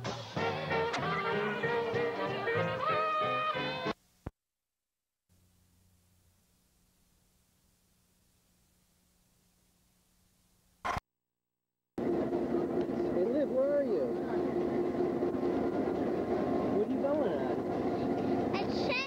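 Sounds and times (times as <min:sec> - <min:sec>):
standing train humming: 0:12.0 - 0:19.0.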